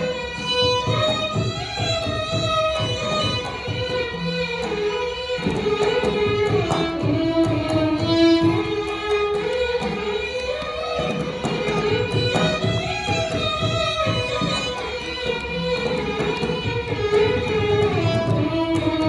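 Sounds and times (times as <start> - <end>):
violins playing a sliding melody: 0.0 - 19.0.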